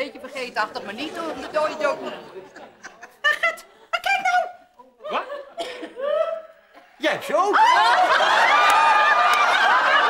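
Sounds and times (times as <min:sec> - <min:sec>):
audience laughing: 0:00.8 - 0:03.8, 0:07.3 - 0:10.0.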